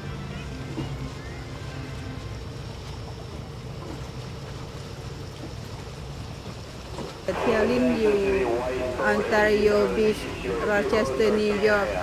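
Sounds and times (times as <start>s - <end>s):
lake water: 0.0s - 12.0s
wind: 0.0s - 12.0s.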